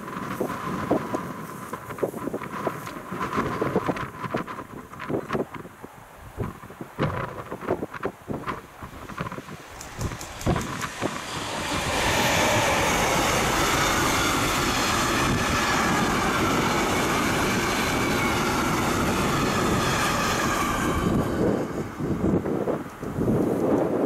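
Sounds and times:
train wheels rolling on rails: 0:00.0 - 0:24.0.

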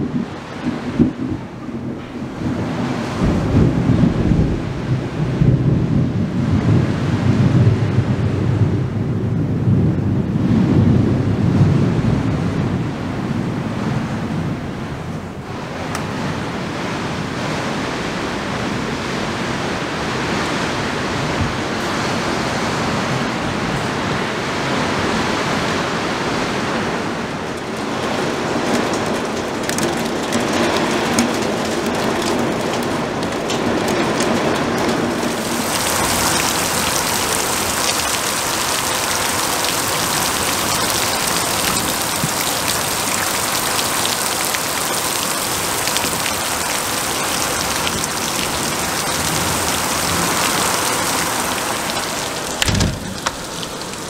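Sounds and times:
gusting wind: 0:00.0 - 0:54.0
heavy rain: 0:00.0 - 0:54.0.

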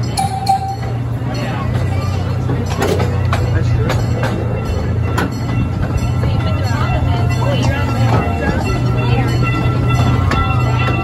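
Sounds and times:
miniature train droning: 0:00.0 - 0:11.0.

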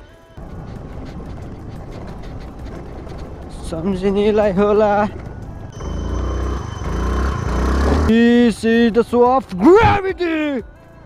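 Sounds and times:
scooter engine passing by: 0:05.1 - 0:08.1.

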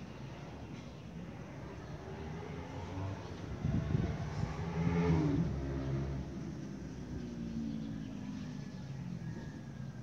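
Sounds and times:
vehicle engine passing: 0:02.0 - 0:09.7.

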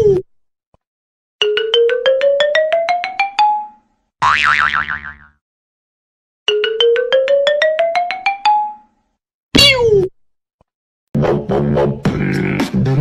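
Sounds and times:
wobbling boing: 0:04.2 - 0:05.4, 0:09.6 - 0:10.1.

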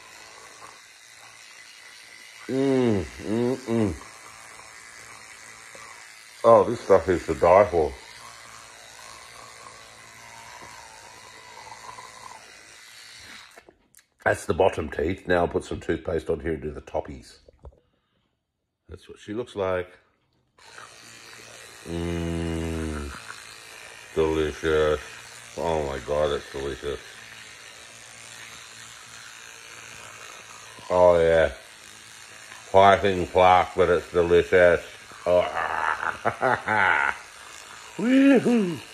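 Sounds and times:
electric toothbrush buzzing: 0:00.0 - 0:16.3, 0:20.6 - 0:38.9.

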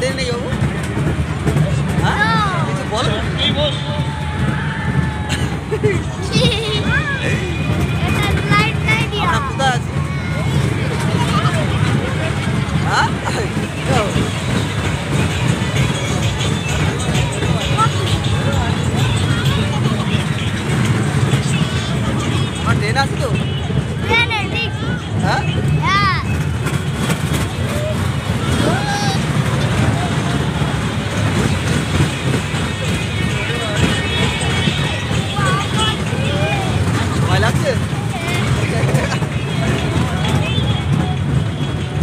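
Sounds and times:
fairground ride rumbling: 0:00.0 - 0:42.0
riders' voices and chatter: 0:00.0 - 0:42.0.

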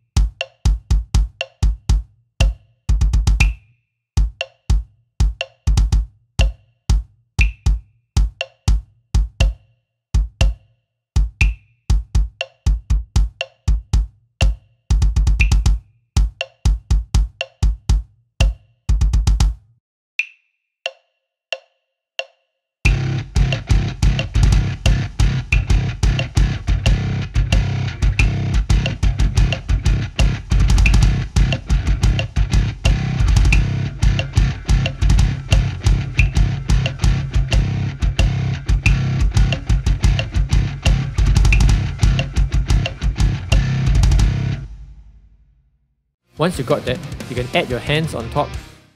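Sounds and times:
double bass drum kicks: 0:00.2 - 0:03.6, 0:04.2 - 0:09.6, 0:11.2 - 0:19.6, 0:22.9 - 0:45.1
metronome click: 0:03.4 - 0:03.6, 0:07.4 - 0:07.6, 0:15.4 - 0:15.7, 0:24.9 - 0:32.3, 0:33.4 - 0:43.7
backing music: 0:22.9 - 0:44.7, 0:46.4 - 0:48.9.

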